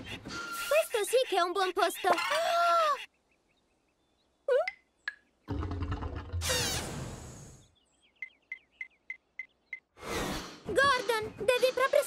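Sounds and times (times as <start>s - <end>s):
cartoon engine burst with hiss: 6.4s - 7.5s.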